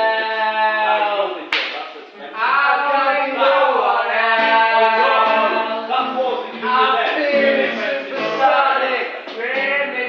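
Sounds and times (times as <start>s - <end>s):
strummed acoustic guitar: 4.3s - 10.0s.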